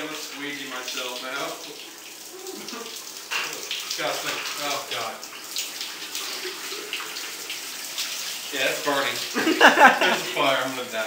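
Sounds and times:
shower spray running: 0.0s - 11.0s.

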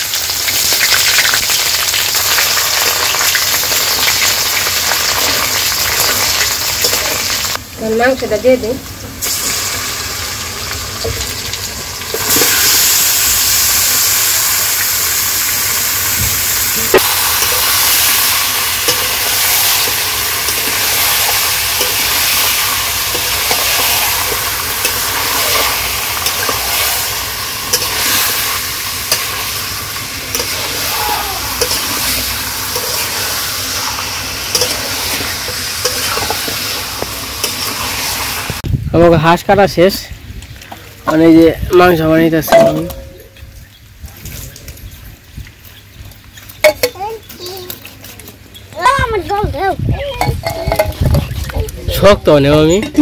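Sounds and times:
food sizzling in hot oil: 0.0s - 38.8s.

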